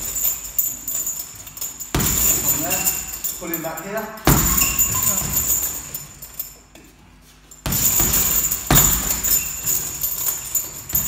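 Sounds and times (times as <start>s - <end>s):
chains jangling: 0.0s - 6.7s, 7.5s - 11.0s
punches on heavy bag: 1.9s - 3.2s, 4.3s - 5.9s, 7.6s - 11.0s.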